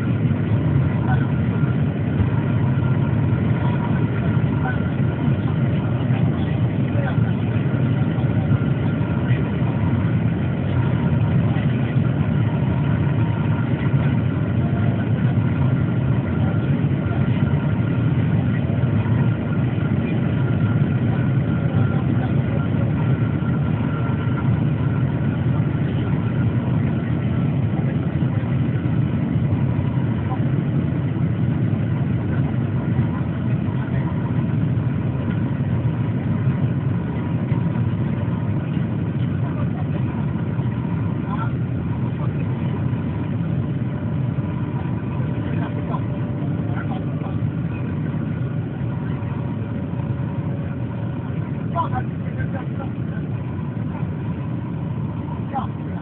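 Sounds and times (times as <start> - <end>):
train running at speed: 0.0 - 56.0.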